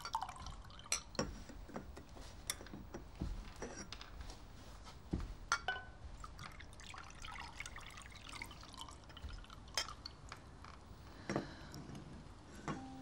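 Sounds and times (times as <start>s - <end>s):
water dripping: 0.0s - 1.5s, 6.2s - 10.6s.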